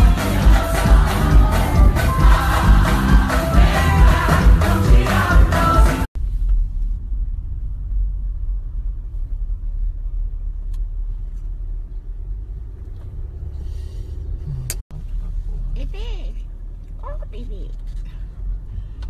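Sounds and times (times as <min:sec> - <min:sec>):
car interior engine and road rumble: 0:00.0 - 0:19.0.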